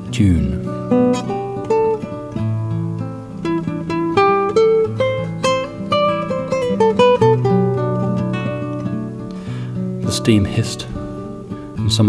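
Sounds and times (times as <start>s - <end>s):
classical guitar plucked notes: 0.0s - 12.0s.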